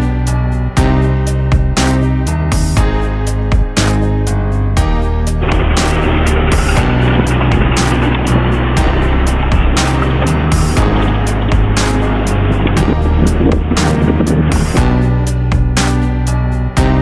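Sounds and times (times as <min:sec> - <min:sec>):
music with steady beat: 0:05.2 - 0:17.0
van engine and road noise: 0:05.4 - 0:15.2.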